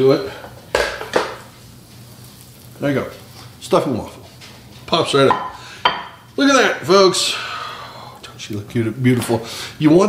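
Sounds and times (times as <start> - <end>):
waffle iron sizzling: 0.0 - 10.0.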